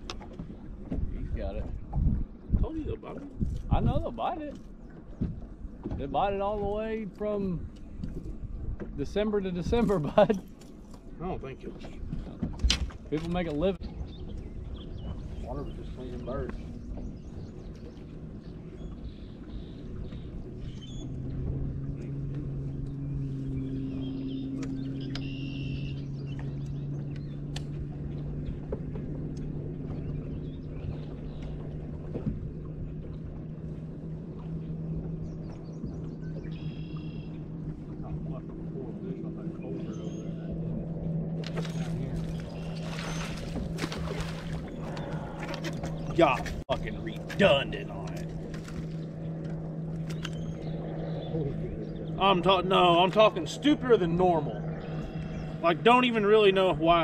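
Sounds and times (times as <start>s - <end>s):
water splashing: 0.0s - 57.0s
electric trolling motor humming: 13.4s - 57.0s.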